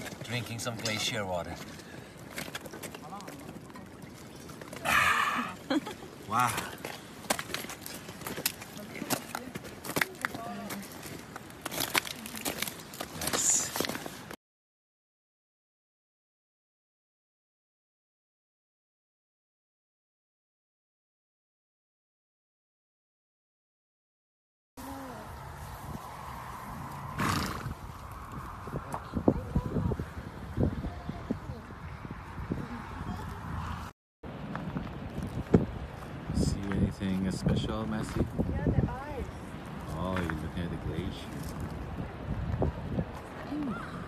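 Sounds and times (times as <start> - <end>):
crunching on glacier ice: 6.3 - 14.4
horse blowing through nostrils: 27.1 - 27.9.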